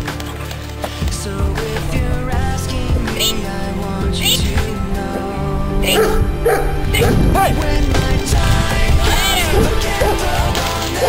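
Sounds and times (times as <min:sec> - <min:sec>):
background music: 0:00.0 - 0:11.0
dog barking: 0:03.2 - 0:03.4, 0:05.8 - 0:07.5, 0:09.2 - 0:11.0.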